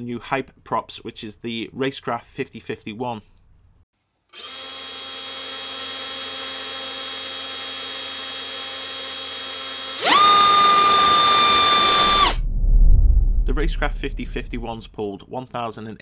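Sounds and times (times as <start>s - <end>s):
electric motor whine: 4.4s - 12.4s.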